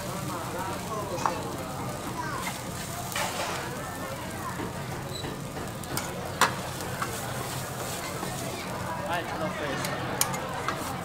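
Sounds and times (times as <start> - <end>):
noodles sizzling on a griddle: 0.0 - 11.0.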